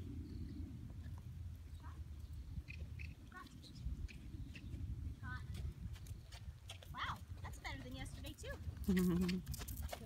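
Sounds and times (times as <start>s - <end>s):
horse hooves cantering on sand: 2.7s - 10.0s.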